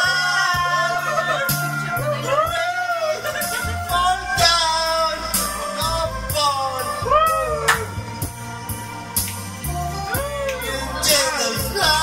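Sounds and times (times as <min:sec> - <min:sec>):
karaoke backing music: 0:00.0 - 0:12.0.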